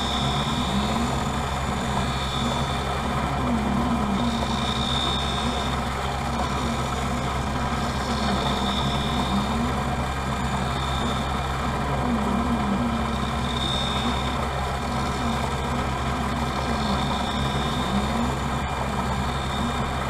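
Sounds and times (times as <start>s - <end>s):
motor hum with wavering tone: 0.0s - 20.0s.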